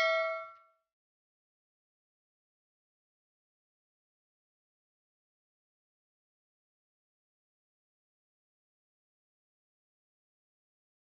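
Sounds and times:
bell-like ding ringing: 0:00.0 - 0:00.7.

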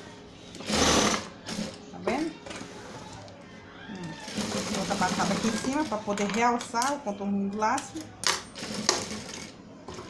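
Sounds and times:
industrial sewing machine stitching: 0:00.6 - 0:01.8, 0:04.2 - 0:05.8, 0:08.6 - 0:09.5.

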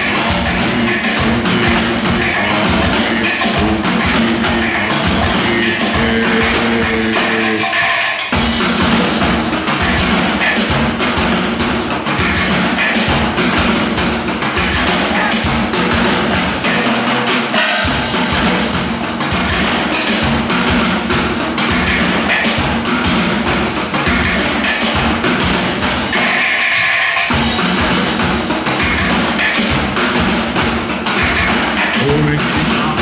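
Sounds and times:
steel barrel drumming: 0:00.0 - 0:07.7, 0:27.3 - 0:33.0.

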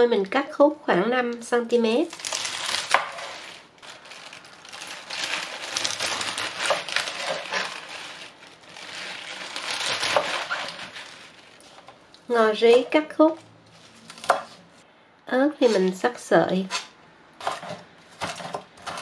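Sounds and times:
knife cutting leafy greens: 0:09.0 - 0:11.2.

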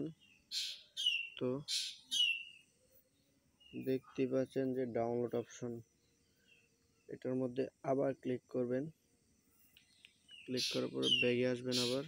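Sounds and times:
bird calling: 0:00.0 - 0:02.8, 0:09.7 - 0:12.0.

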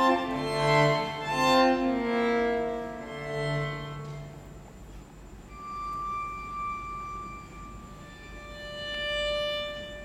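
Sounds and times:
high violin note held steady: 0:00.0 - 0:04.8, 0:05.4 - 0:10.0.

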